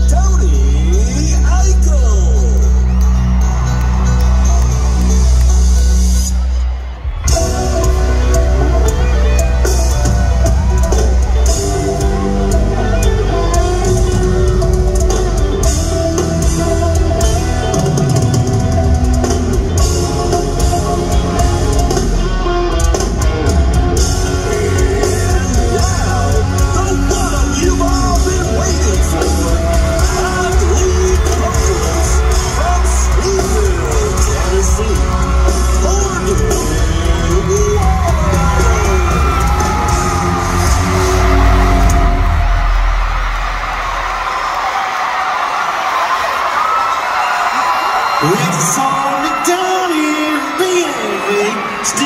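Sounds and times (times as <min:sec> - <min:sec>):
crowd cheering and whooping: 0:00.0 - 0:52.0
live rock band playing: 0:00.0 - 0:52.0.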